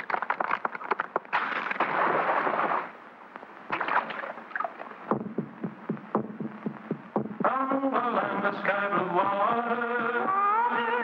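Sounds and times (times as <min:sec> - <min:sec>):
noisy splash-like burst: 0:01.4 - 0:03.0
drum beating steadily: 0:05.1 - 0:07.6.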